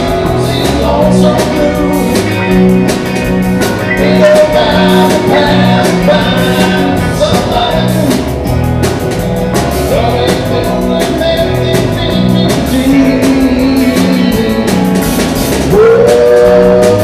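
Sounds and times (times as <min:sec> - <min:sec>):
live rock band: 0:00.0 - 0:17.0.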